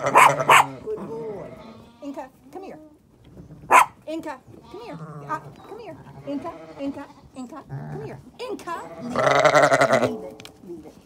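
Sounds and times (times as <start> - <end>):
sheep bleating: 0.0 - 2.2, 4.6 - 7.3, 7.9 - 10.2.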